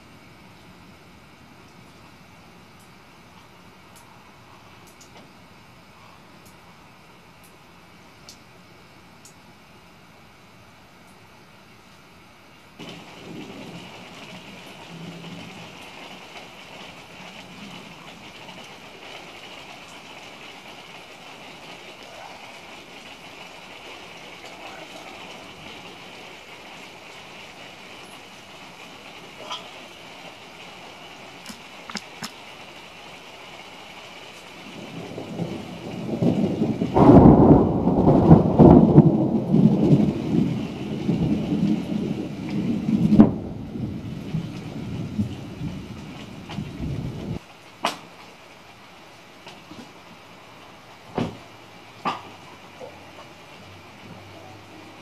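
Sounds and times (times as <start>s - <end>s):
rain hissing: 0.0s - 55.0s
sharp thunder crack: 12.8s - 16.2s, 34.7s - 48.0s
low thunder rumble: 12.8s - 33.2s, 34.0s - 47.4s.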